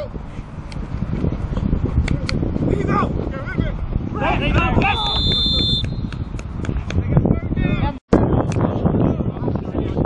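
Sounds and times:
wind rumble on microphone: 0.0 - 10.0
whistle blown: 4.8 - 6.2.

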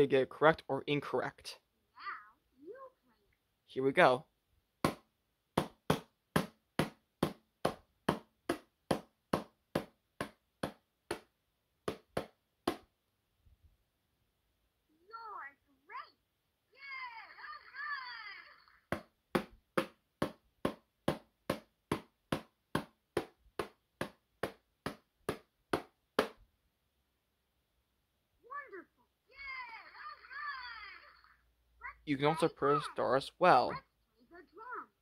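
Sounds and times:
toy speaking: 1.9 - 3.4, 14.9 - 18.8, 28.4 - 35.0.

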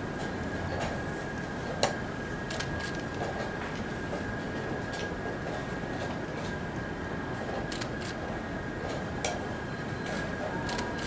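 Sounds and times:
high steady whine: 0.0 - 11.0
steady hall hum: 0.0 - 11.0.

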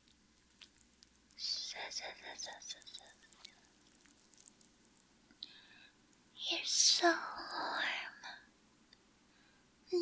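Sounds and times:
woman whispering: 1.4 - 3.7, 6.4 - 8.5.

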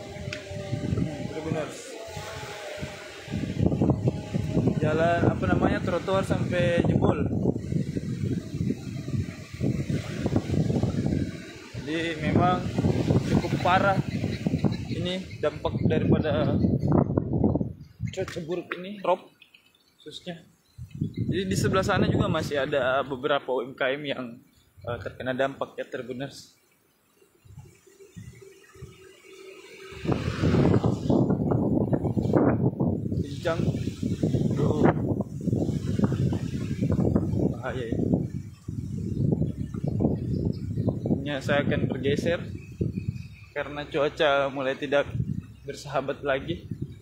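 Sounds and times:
wind buffeting microphone: 0.0 - 18.7, 20.6 - 23.0, 27.4 - 47.0.

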